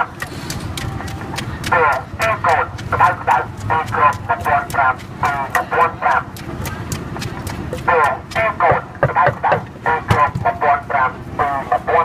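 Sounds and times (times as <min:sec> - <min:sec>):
wooden pestle pounding in mortar: 0:00.0 - 0:10.6.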